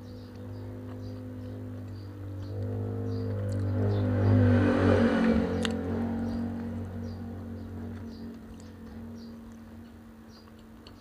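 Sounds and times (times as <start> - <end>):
vehicle engine passing by: 0.0 - 10.6.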